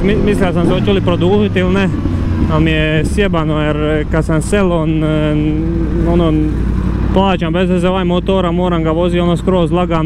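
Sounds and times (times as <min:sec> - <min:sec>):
man's drawn-out hesitation sound: 0:00.0 - 0:10.0
motorcycle engine rumble: 0:00.0 - 0:10.0.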